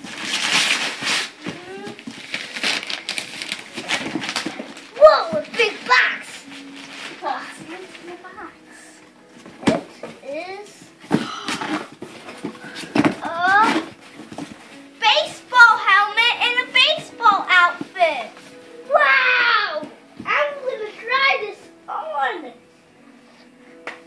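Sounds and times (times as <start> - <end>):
faint music: 0.0 - 24.0
cardboard box being torn open: 0.1 - 4.8.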